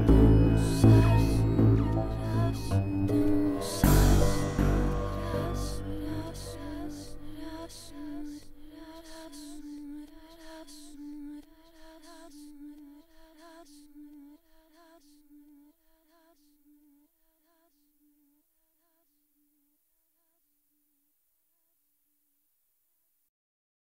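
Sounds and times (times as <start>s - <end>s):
ambient tribal electronic music: 0.0s - 7.5s.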